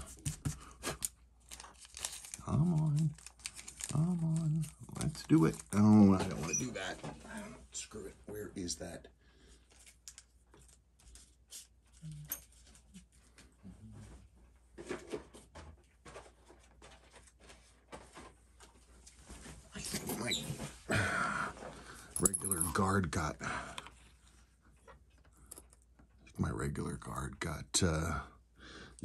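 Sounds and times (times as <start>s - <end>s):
plastic bag crinkling: 1.4s - 5.9s.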